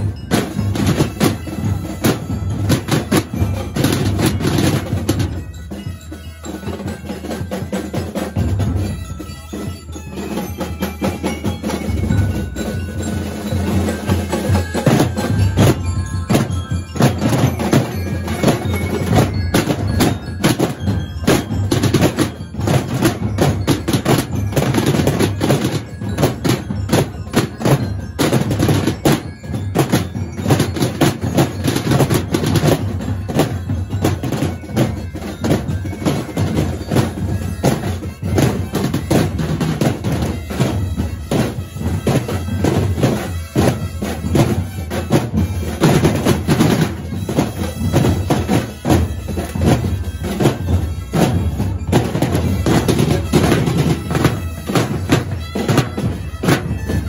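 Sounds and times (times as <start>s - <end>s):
marching drums beating: 0.0s - 57.0s.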